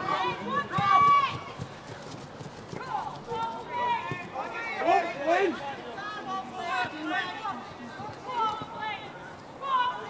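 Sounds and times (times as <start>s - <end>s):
people shouting: 0.0s - 1.6s.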